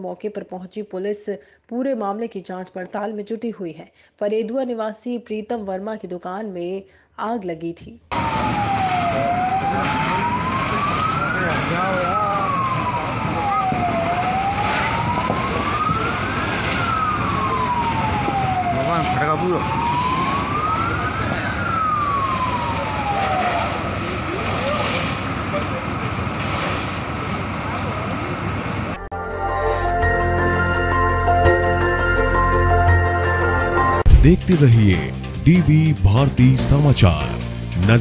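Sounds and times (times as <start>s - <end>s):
emergency siren wailing: 8.1s - 29.1s.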